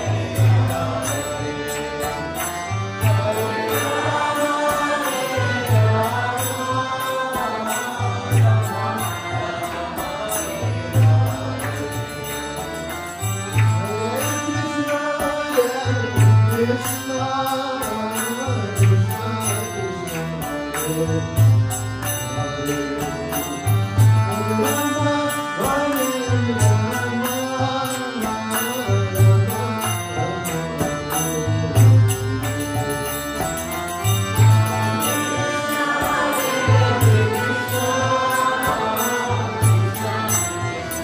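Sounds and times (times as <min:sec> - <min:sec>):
people chanting: 0:00.0 - 0:16.8, 0:31.3 - 0:41.0
harmonium chords: 0:00.0 - 0:41.0
person chanting: 0:22.6 - 0:41.0.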